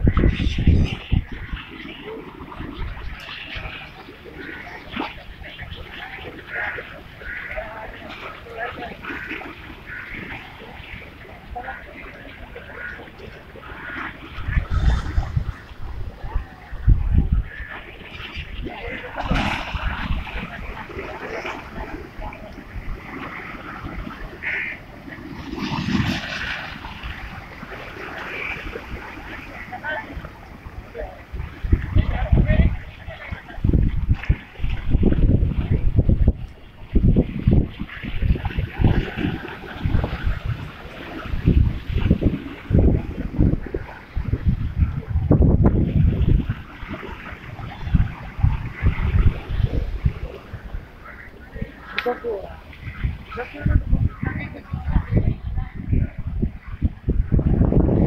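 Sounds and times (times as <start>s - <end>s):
waves slapping against seawall: 0.0s - 58.0s
wind buffeting microphone: 0.0s - 58.0s.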